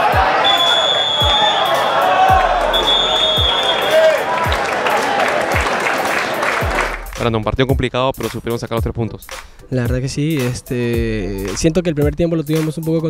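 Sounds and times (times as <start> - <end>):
bass drum beats: 0.0 - 0.5, 1.2 - 3.8, 6.6 - 12.9
stadium crowd chanting: 0.0 - 6.9
whistle blowing: 0.3 - 4.5.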